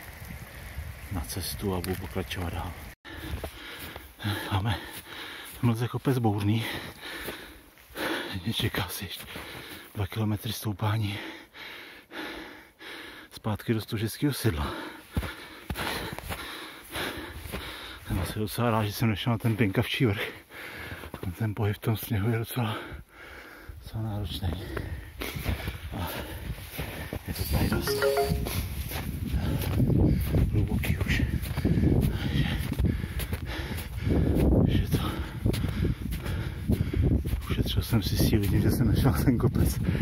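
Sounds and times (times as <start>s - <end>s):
runner breathing hard: 3.0s - 5.6s, 6.6s - 8.4s, 9.2s - 9.9s, 11.1s - 13.3s, 14.6s - 18.1s, 20.2s - 21.2s, 22.7s - 23.8s, 24.6s - 27.3s, 29.2s - 30.5s, 31.3s - 37.4s, 39.8s - 40.0s
footsteps in deep snow: 3.1s - 10.2s, 14.4s - 22.1s, 24.3s - 39.2s.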